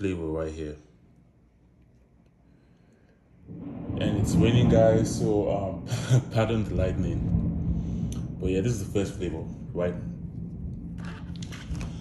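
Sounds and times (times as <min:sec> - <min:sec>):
low rumble of thunder: 0:03.4 - 0:12.0.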